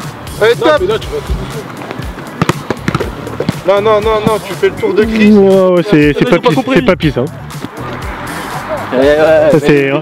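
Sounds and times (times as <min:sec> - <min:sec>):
background music: 0:00.0 - 0:10.0
football being kicked: 0:01.9 - 0:04.4.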